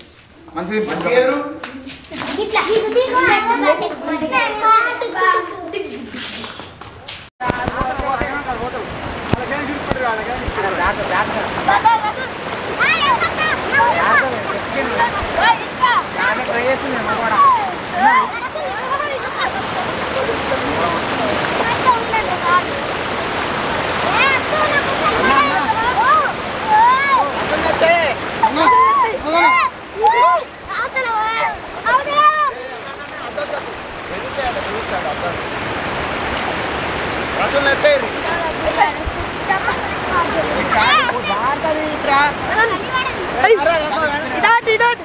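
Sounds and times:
rushing floodwater: 0:00.0 - 0:45.0
children shouting: 0:02.2 - 0:06.3, 0:11.6 - 0:16.5, 0:17.1 - 0:33.9, 0:38.2 - 0:41.6
high voices calling out: 0:09.8 - 0:34.6.

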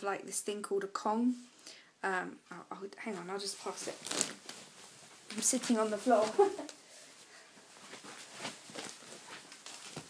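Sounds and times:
faint rustling and handling: 0:02.5 - 0:10.0.

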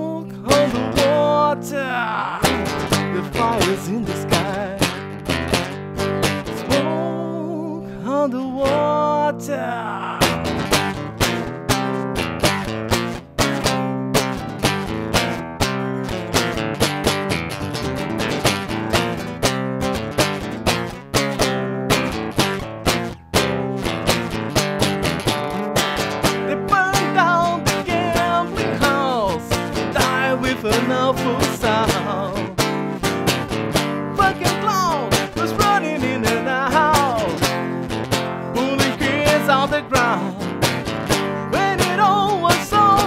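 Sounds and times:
acoustic guitar strumming chords: 0:00.0 - 0:43.0
sliding guitar melody: 0:00.0 - 0:43.0.

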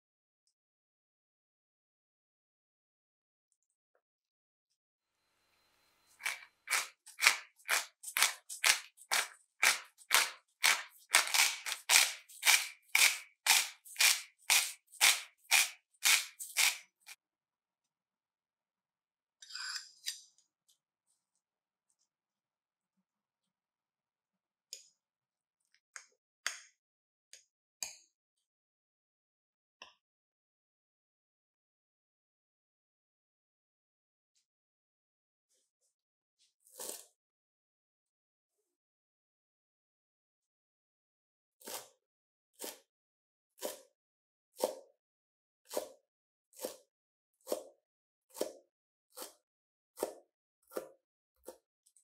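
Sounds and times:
knife chopping on cutting board: 0:06.2 - 0:17.2, 0:43.6 - 0:43.9, 0:44.6 - 0:44.9, 0:45.7 - 0:46.0, 0:46.6 - 0:49.4, 0:50.0 - 0:51.7.

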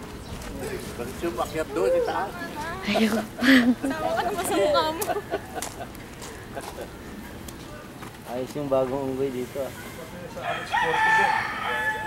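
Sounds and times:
rooster crowing: 0:10.4 - 0:12.0.

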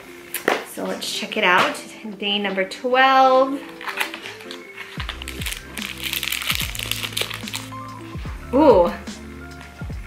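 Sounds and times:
background music with low notes: 0:00.0 - 0:10.0
paper sachet crinkling: 0:03.6 - 0:08.1.

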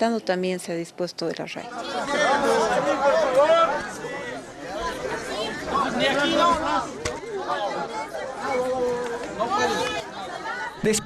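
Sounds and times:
voices talking over one another: 0:01.6 - 0:11.0.

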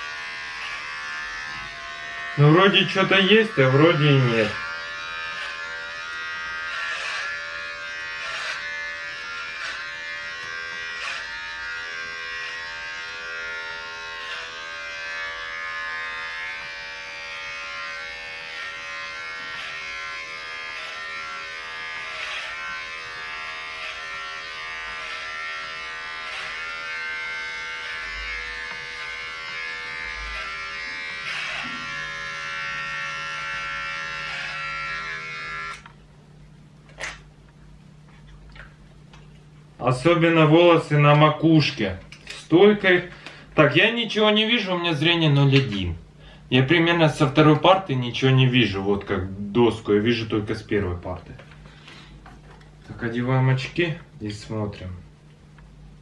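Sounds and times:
electric hair clipper buzzing: 0:00.0 - 0:36.0, 0:36.9 - 0:37.3.

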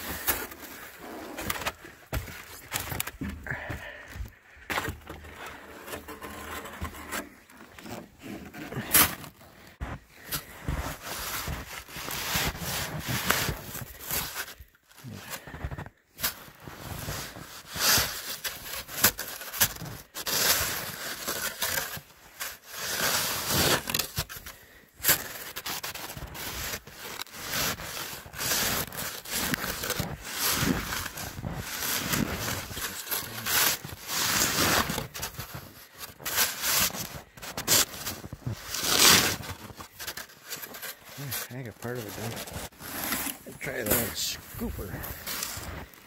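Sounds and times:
snow shovel scraping snow: 0:00.0 - 0:01.8, 0:05.1 - 0:46.0.

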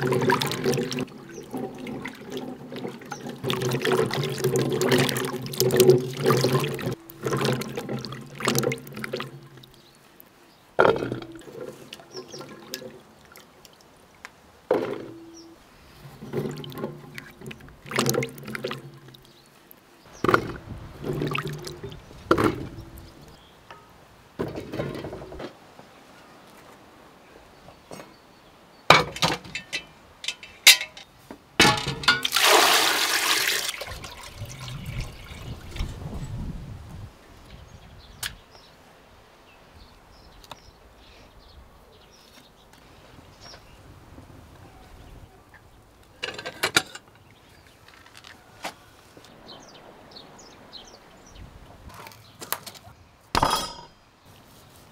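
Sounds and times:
water pouring: 0:00.0 - 0:10.0, 0:10.8 - 0:14.1, 0:16.0 - 0:19.5, 0:20.2 - 0:23.4, 0:31.6 - 0:36.3
water splashing in a basin: 0:00.0 - 0:10.0, 0:10.8 - 0:15.4, 0:16.0 - 0:19.4, 0:20.1 - 0:23.4, 0:31.6 - 0:36.2.

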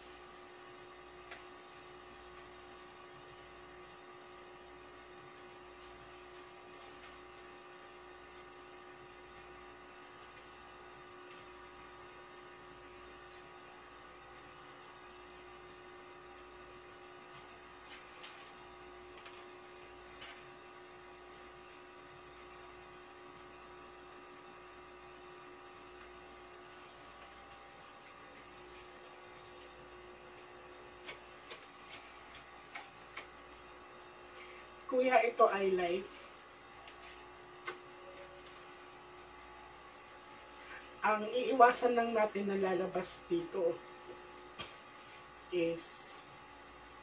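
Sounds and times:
faint electrical hum: 0:00.0 - 0:47.0.

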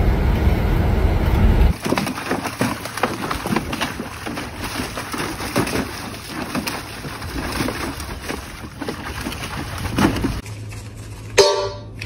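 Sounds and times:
dog splashing in water: 0:01.7 - 0:10.4.

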